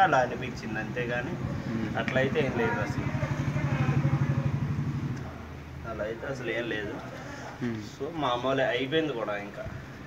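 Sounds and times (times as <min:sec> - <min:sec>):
small motorcycle engine passing: 0:00.9 - 0:05.6.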